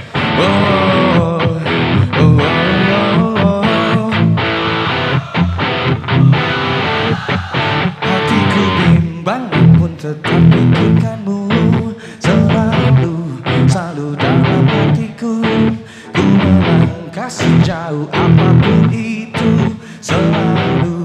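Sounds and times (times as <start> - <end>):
guitar: 0.0 - 21.0
pop-rock band playing live: 0.0 - 21.0.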